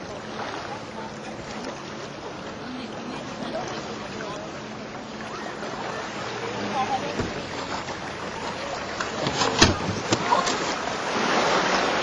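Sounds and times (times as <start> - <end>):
faint voices: 0.0 - 10.9.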